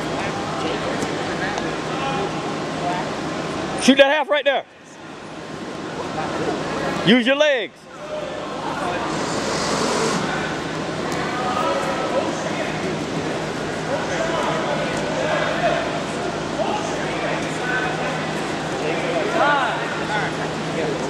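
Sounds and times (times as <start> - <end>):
crowd chatter: 0.0 - 21.0
steady low hum: 0.0 - 21.0.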